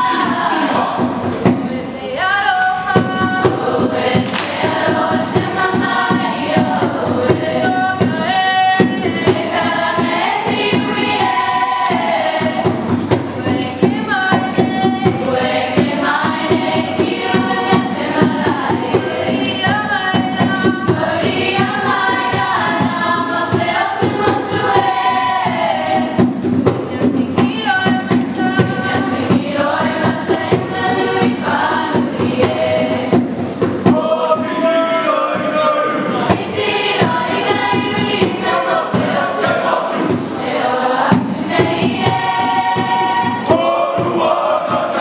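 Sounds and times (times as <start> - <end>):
group of voices singing: 0.0 - 45.0
regular rhythmic beat: 0.0 - 45.0.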